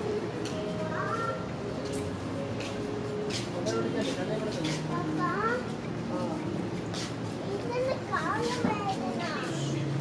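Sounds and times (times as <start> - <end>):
city background hum: 0.0 - 10.0
high-pitched voices chattering: 0.0 - 10.0.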